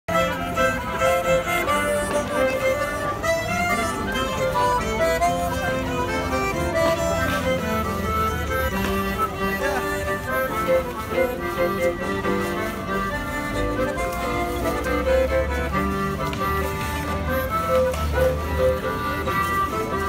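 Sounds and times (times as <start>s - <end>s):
folk dance band playing: 0.1s - 20.0s.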